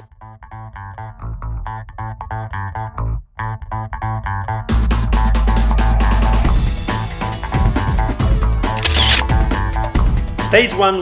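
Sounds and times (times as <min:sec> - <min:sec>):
instrumental background music: 0:04.7 - 0:11.0.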